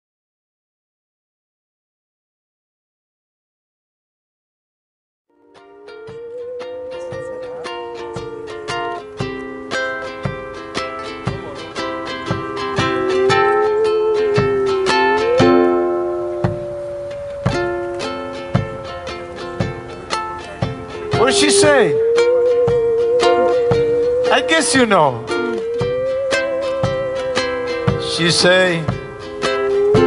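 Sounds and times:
held wavering melody line: 5.4 - 30.0
plucked ukulele chords: 5.4 - 30.0
frame drum beats: 5.5 - 30.0.

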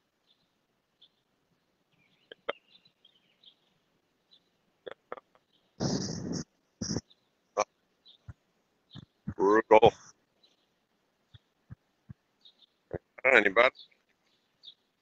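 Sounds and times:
burst of noise: 5.8 - 7.0.

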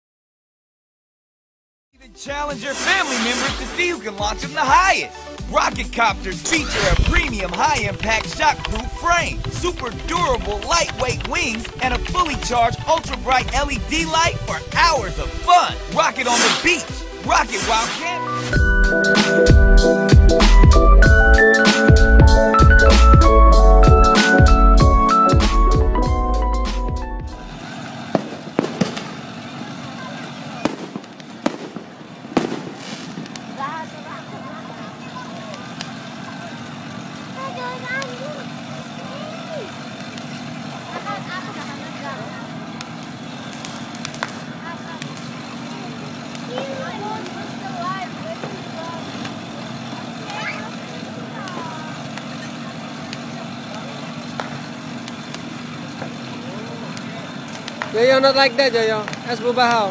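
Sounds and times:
intro music: 2.3 - 27.6
sharp pops: 2.5 - 4.6, 6.4 - 18.6, 27.6 - 33.9, 39.8 - 41.0, 42.5 - 50.8, 51.4 - 58.0
children's voices and chatter: 28.8 - 31.1, 33.3 - 59.9.

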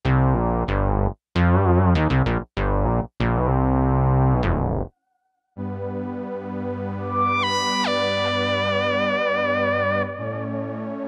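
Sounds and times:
sustained synth pad chords: 5.6 - 11.0
synth lead melody: 5.6 - 11.0.

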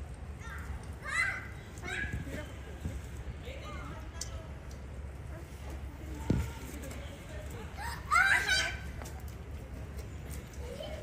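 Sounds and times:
children calling out: 0.4 - 2.3, 7.7 - 9.0.

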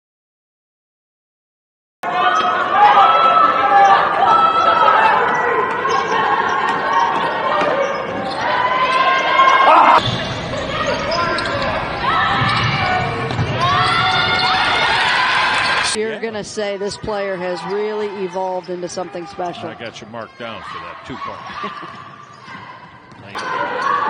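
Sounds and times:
players calling out: 2.1 - 24.0
sneakers squealing on hardwood: 4.6 - 14.8
basketball bouncing: 10.0 - 14.5.

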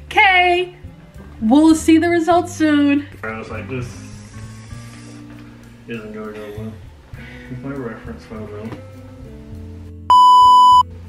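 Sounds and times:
quiet background music: 0.0 - 11.0
censor bleep: 10.1 - 10.9.

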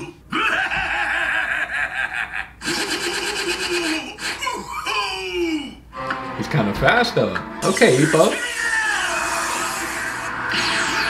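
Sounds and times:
man laughing loudly: 0.3 - 5.0.

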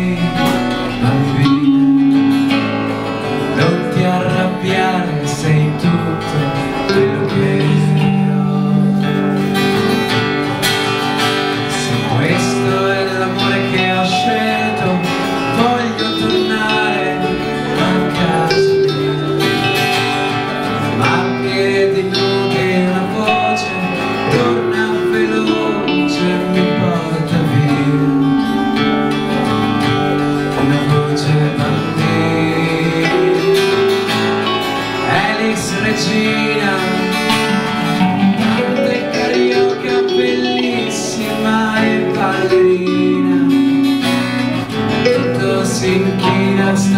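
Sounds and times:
acoustic guitar strummed: 0.0 - 46.9
electric guitar playing: 0.0 - 46.9.

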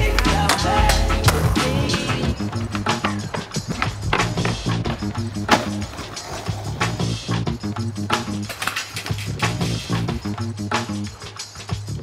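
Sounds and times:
hip-hop music: 0.0 - 12.0
skateboard wheels rolling on pavement: 0.0 - 12.0.

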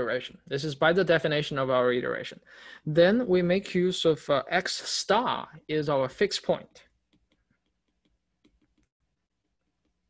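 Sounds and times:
stylus tapping on tablet screen: 7.0 - 10.0.

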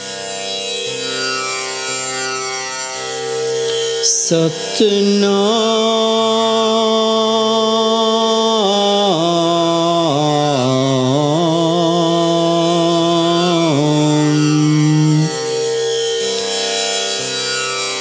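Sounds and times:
man chanting: 3.9 - 15.8.

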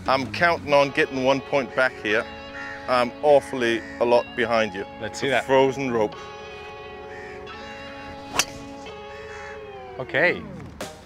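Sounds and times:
background music: 0.0 - 11.0
golf club striking ball: 8.1 - 9.0.

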